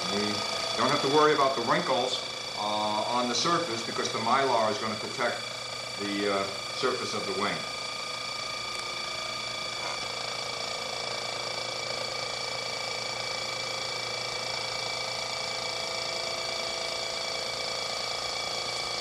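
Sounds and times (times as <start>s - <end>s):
electric vacuum pump whining: 0.0s - 19.0s.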